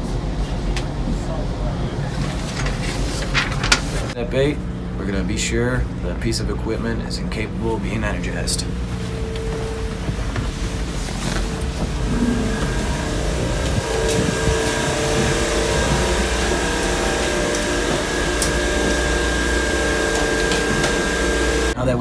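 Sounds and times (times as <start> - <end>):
machinery and ventilation hum: 0.0 - 22.0
steady tones: 2.8 - 21.8
thin high whine: 4.1 - 21.8.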